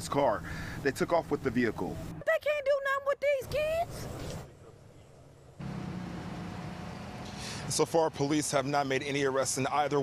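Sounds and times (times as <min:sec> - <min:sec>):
street background noise with hum: 0:00.0 - 0:10.0.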